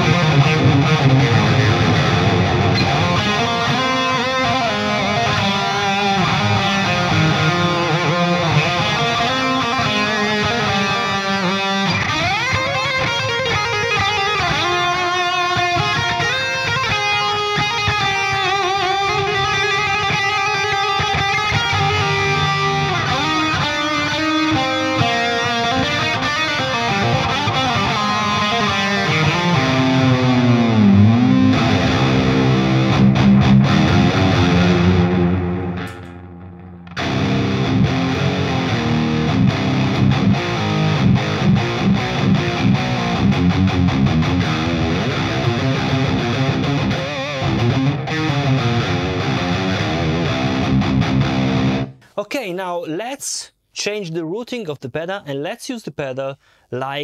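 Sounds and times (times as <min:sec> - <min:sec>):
electric guitar with delay and reverb: 0:00.0 - 0:52.0.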